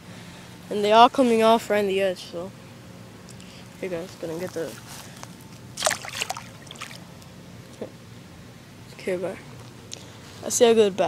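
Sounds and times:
fish splashing in water: 5.8s - 7.1s.

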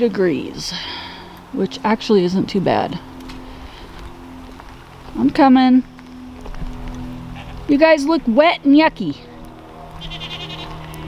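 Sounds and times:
steady low hum: 0.0s - 11.0s
goat bleating: 7.3s - 7.6s, 10.0s - 11.0s.

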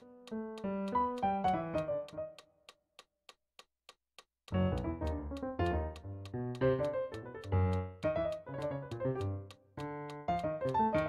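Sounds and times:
metronome clicking: 0.0s - 3.1s, 4.5s - 11.0s.

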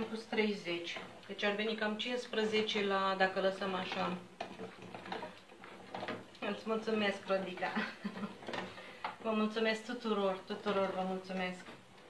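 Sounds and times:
wooden spoon scraping saucepan: 0.0s - 12.0s.

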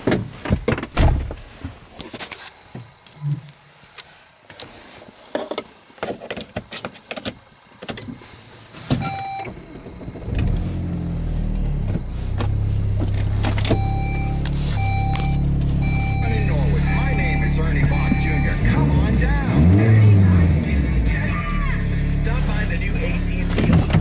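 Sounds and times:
car engine starting and idling: 7.2s - 24.0s
car warning chime: 9.0s - 9.5s, 13.6s - 19.8s
engine revving: 10.1s - 24.0s.

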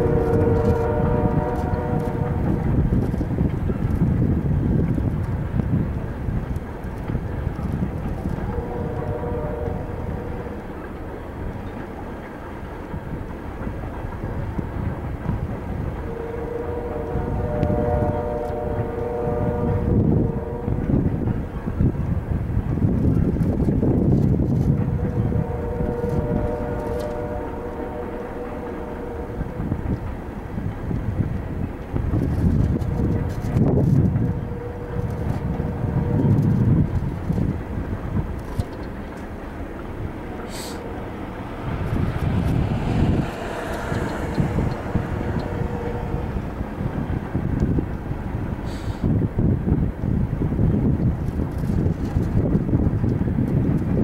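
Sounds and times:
train wheels rumbling over rails: 0.0s - 54.0s
steady pitched tone: 38.9s - 48.4s.

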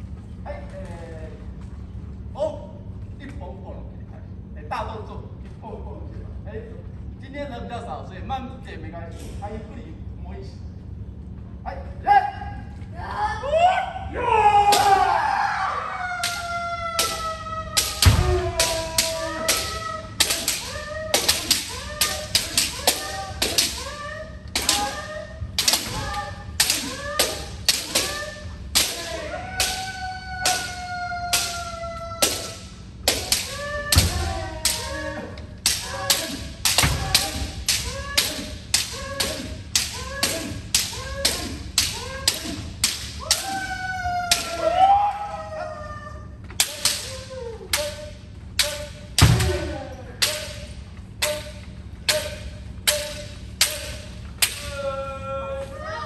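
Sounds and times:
long drawn-out shouts: 13.0s - 50.4s
bamboo swords striking helmets: 14.6s - 15.2s, 16.2s - 44.8s, 46.5s - 54.8s.

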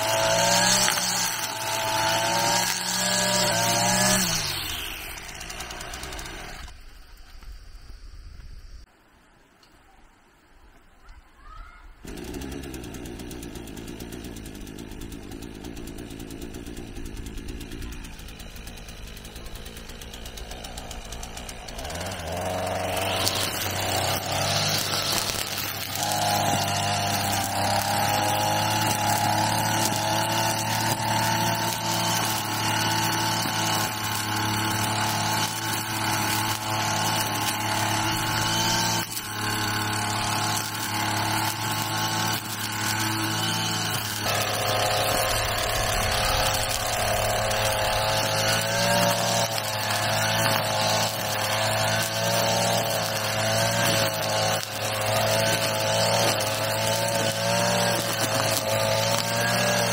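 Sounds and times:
brush cutter engine: 0.0s - 7.1s, 12.0s - 59.9s.

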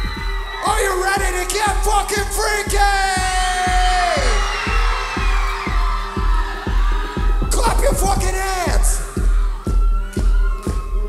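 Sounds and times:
deep bass: 0.0s - 11.0s
electronic music over club speakers: 0.0s - 11.0s
heavy kick drum: 0.0s - 11.0s.

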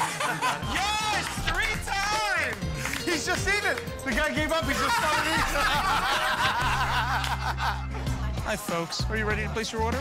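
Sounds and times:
man snickering and chuckling: 0.0s - 0.6s, 4.9s - 7.9s
background music with low notes: 0.0s - 10.0s.

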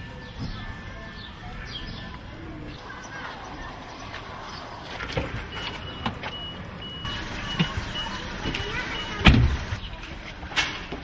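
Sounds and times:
car warning chime beeping: 5.5s - 9.8s.

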